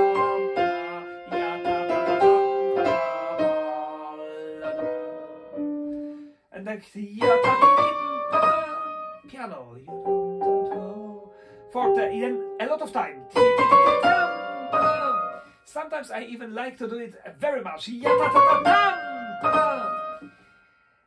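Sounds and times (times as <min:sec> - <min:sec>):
grand piano playing: 0:00.0 - 0:06.3, 0:07.2 - 0:09.3, 0:09.9 - 0:15.5, 0:18.0 - 0:20.3.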